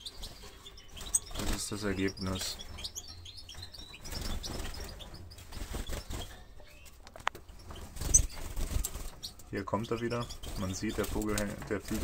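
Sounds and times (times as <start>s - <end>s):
bird chirps: 0.0s - 12.0s
bird wingbeats in a cage: 1.0s - 1.9s, 4.0s - 6.4s, 7.2s - 9.5s, 10.2s - 12.0s.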